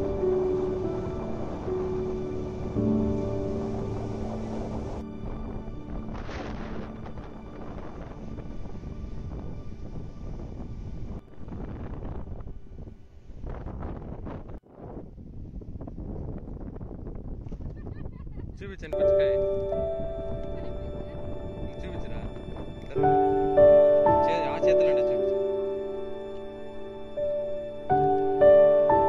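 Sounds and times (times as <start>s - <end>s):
sea surf: 0.0s - 8.8s
wind on microphone: 0.0s - 29.0s.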